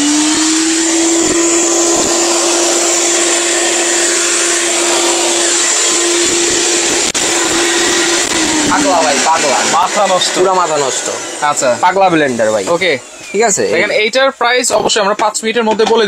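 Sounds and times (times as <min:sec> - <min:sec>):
blender motor running: 0:00.0 - 0:14.6
man speaking: 0:08.6 - 0:16.0.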